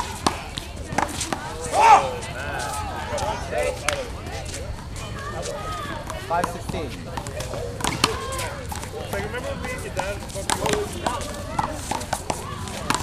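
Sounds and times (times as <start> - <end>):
people chatting: 0.0 - 13.0.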